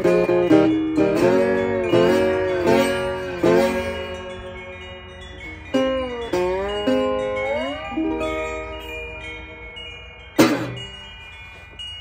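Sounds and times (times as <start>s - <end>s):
resonator guitar chord strummed: 0.0s - 11.0s.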